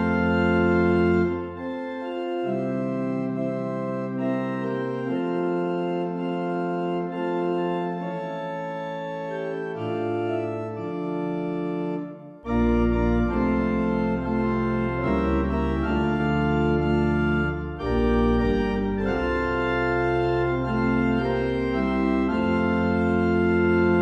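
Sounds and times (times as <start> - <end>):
church organ chords: 0.0 - 24.0
deep organ pedal bass: 0.0 - 24.0.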